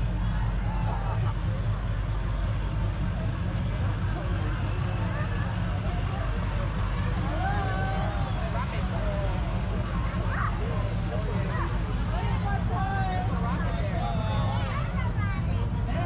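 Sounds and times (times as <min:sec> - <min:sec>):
crowd chatter: 0:00.0 - 0:16.0
truck engine rumbling: 0:00.0 - 0:16.0.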